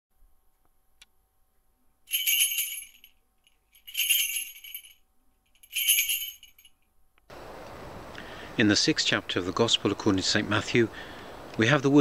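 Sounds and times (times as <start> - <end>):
small jingling bells: 2.1 - 6.8
outdoor hiss of air: 7.3 - 12.0.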